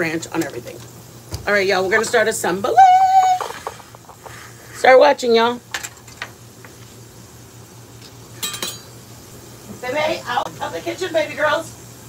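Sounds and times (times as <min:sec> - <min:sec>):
kitchenware clinking: 0:05.7 - 0:06.4, 0:08.3 - 0:09.0.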